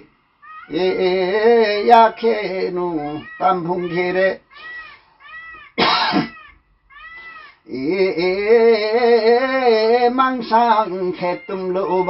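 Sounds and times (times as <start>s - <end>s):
faint high calls: 0.0s - 8.6s, 10.4s - 12.0s
singer coughing burst of breath: 5.8s - 6.4s.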